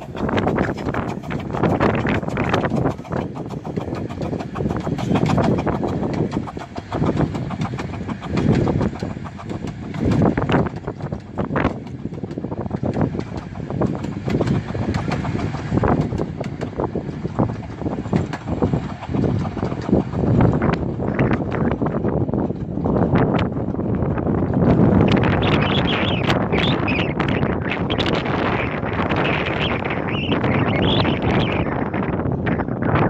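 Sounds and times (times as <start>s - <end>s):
steam train rolling past: 0.0s - 33.0s
wheels clicking over rail joints: 0.0s - 33.0s
wind buffeting microphone: 0.0s - 33.0s.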